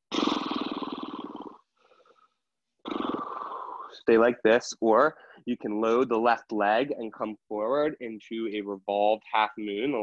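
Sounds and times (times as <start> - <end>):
person breathing hard: 5.2 - 5.5.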